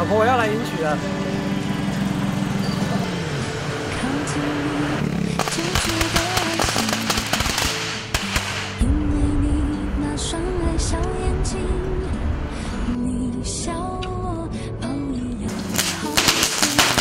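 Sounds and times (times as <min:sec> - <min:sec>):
background music: 0:00.0 - 0:17.0
firecrackers crackling: 0:05.3 - 0:08.8, 0:15.5 - 0:17.0.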